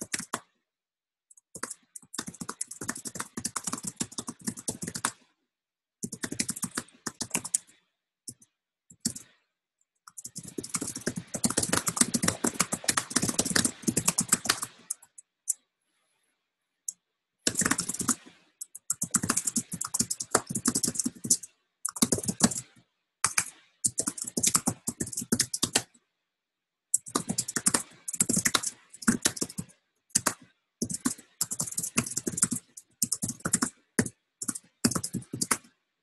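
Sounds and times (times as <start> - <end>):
typing on a computer keyboard: 0.0 - 0.6, 1.3 - 5.3, 6.0 - 9.4, 10.0 - 15.6, 16.9 - 26.0, 26.9 - 35.9.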